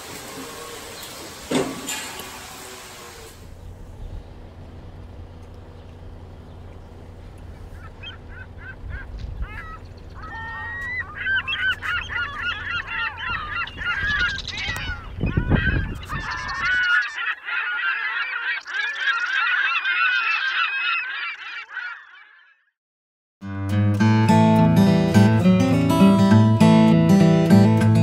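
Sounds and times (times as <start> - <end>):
geese honking: 7.2 - 22.6.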